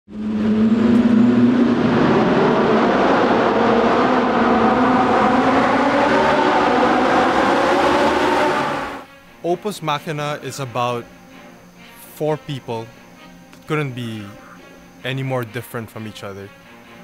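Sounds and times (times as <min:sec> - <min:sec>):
car engine echoing in tunnel: 0:00.1 - 0:09.1.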